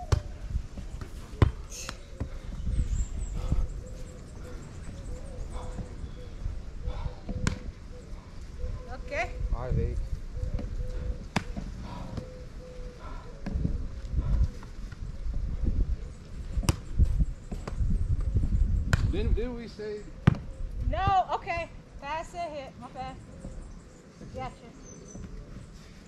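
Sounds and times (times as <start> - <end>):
wind rumble on microphone: 0.0 - 22.2
hand slapping volleyball: 7.3 - 7.7, 11.3 - 12.3, 16.6 - 16.8, 18.9 - 19.1.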